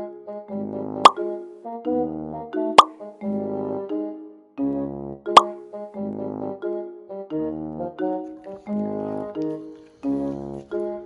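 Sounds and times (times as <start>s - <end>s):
light keyboard music: 0.0s - 11.0s.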